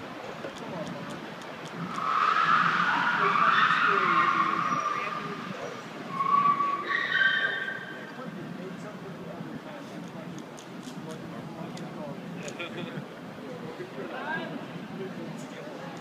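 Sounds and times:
car tyres squealing: 1.7 - 8.2.

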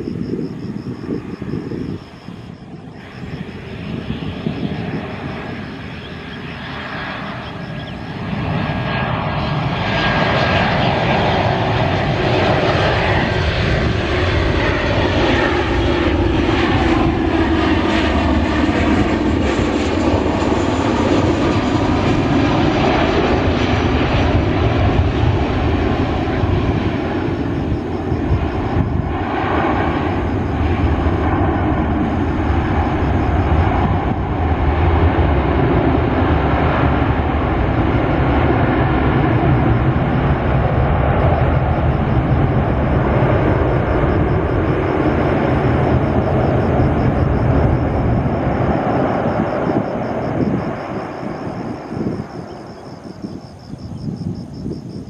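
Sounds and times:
jet engines on landing approach: 0.0 - 55.0.

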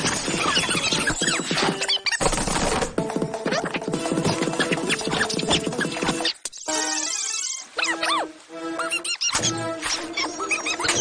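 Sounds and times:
high-pitched squeaks and chirps: 0.0 - 2.2, 3.5 - 11.0
sped-up cartoon music: 0.0 - 11.0.

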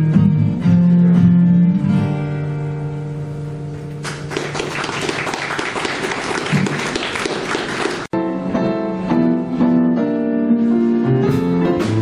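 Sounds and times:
audience applauding: 4.0 - 8.1.

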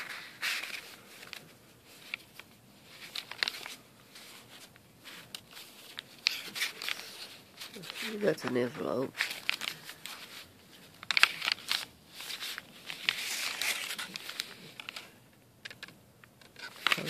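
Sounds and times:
stiff paper rustling: 0.0 - 15.2, 16.5 - 17.0.

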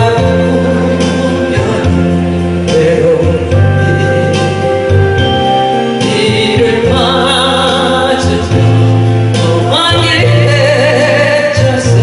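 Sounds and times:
woman singing into microphone: 0.0 - 5.3, 6.0 - 12.0
amplified backing music: 0.0 - 12.0.

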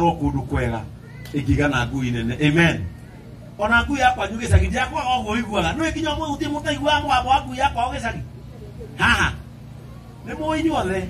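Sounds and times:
man speaking over pa speakers: 3.6 - 8.4, 10.2 - 11.0.

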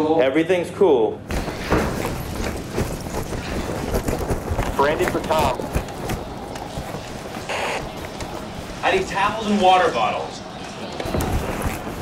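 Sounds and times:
hurried footsteps on hard floor: 1.3 - 9.3.

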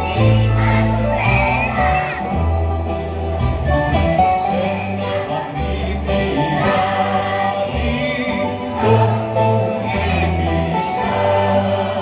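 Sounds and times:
children's choir singing: 0.0 - 2.9, 4.2 - 12.0
acoustic guitar: 0.0 - 12.0.

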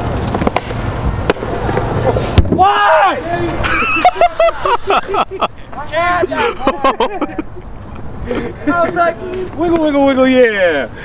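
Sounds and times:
bike tyres rolling on concrete: 0.0 - 10.9.

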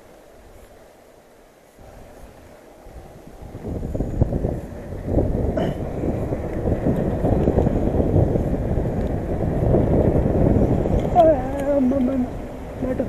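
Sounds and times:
bicycle tyre rumble: 0.0 - 13.0
wind buffeting microphone: 1.6 - 13.0.

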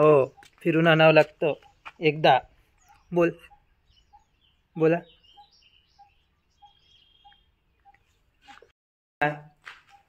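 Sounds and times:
bird repeating low note: 0.0 - 8.7
high bird chirps: 0.0 - 8.7
high bird trill: 0.0 - 8.7.

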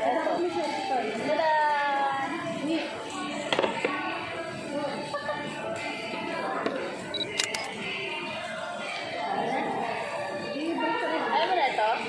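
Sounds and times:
restaurant chatter: 0.0 - 12.0.

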